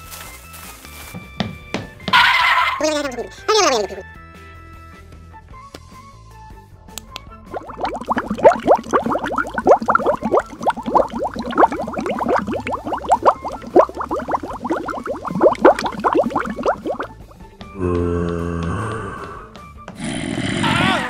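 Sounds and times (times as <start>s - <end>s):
cartoon bubbling bloops: 7.5s - 17.3s.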